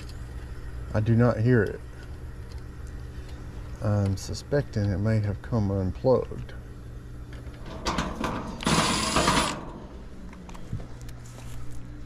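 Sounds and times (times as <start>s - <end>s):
heat pump unit humming: 0.0s - 12.0s.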